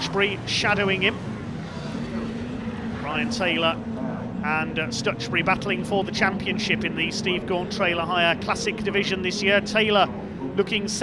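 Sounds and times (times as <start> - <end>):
rally car engines racing: 0.0 - 11.0.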